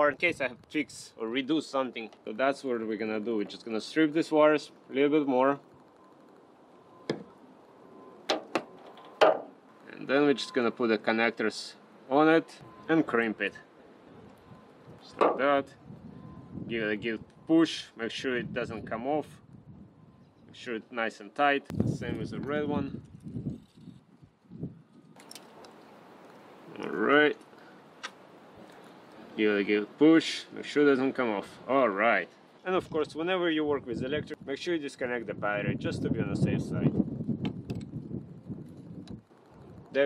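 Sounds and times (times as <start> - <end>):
electrical wires clicking and snapping: 8.3 - 9.5, 25.1 - 26.4
light hiss: 25.2 - 32.8.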